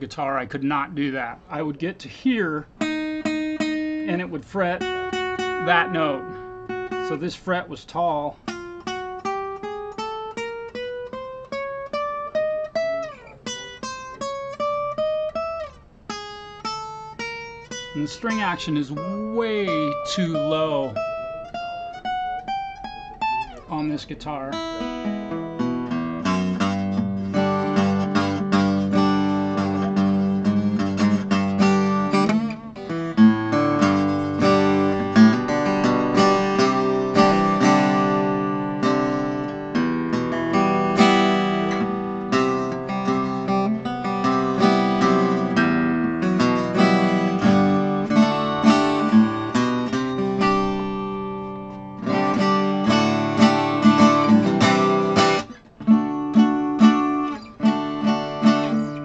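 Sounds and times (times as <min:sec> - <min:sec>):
acoustic guitar playing: 0:00.0 - 0:59.0.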